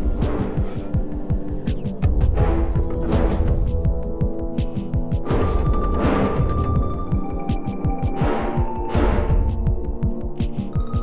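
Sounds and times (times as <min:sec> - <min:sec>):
dramatic music with pulsing beat: 0:00.0 - 0:11.0.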